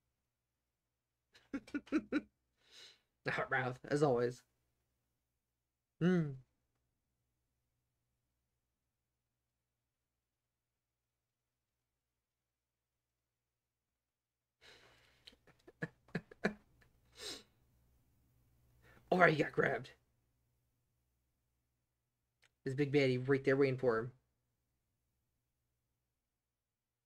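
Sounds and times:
man chuckling: 0:01.4 - 0:02.3, 0:15.3 - 0:17.4
person exhaling breathily: 0:02.6 - 0:03.0, 0:17.1 - 0:17.5
soft in-breath: 0:02.6 - 0:03.1, 0:14.6 - 0:15.3.

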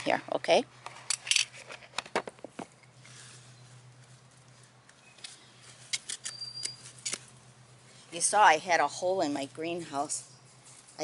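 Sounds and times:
faint clicks and rustles: 0:00.8 - 0:08.2.

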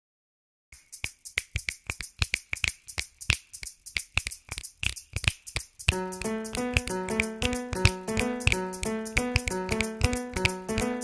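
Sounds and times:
rapid sharp clicks: 0:00.8 - 0:11.0
glockenspiel notes: 0:05.9 - 0:11.0.

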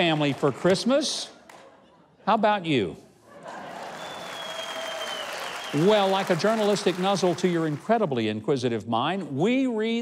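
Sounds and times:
audience applauding: 0:03.6 - 0:08.0.

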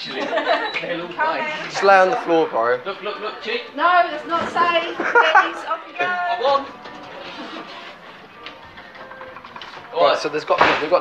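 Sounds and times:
faint background voices: 0:00.0 - 0:11.0
quiet music: 0:00.6 - 0:11.0.

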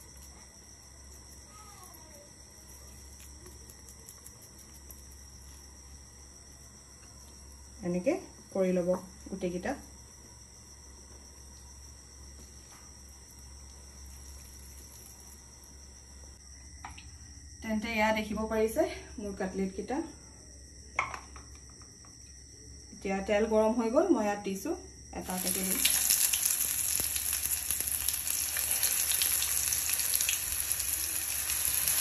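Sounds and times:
crickets chirping: 0:00.0 - 0:32.0
steady high-pitched hiss: 0:00.0 - 0:32.0.

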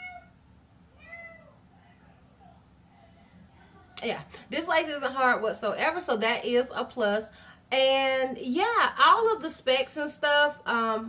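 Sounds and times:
cat meowing: 0:00.0 - 0:00.4, 0:01.0 - 0:01.6.

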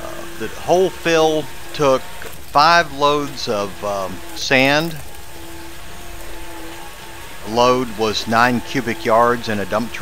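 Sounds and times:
diesel engine rumbling: 0:00.0 - 0:10.0.

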